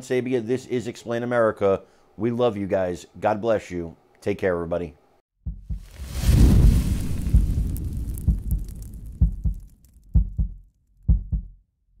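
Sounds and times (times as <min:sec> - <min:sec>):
low heartbeat-like double thuds: 0:05.4 - 0:11.6
deep boom with hiss: 0:05.5 - 0:10.6.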